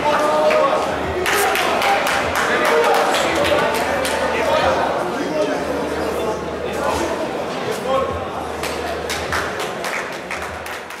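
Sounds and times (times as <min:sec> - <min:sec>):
small crowd clapping: 0:01.2 - 0:04.3, 0:08.6 - 0:11.0.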